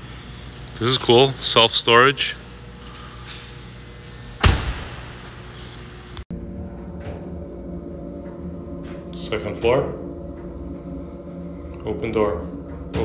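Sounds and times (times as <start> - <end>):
low hum with even tones: 0.0 - 13.0
heavy thump with echo: 4.4 - 5.4.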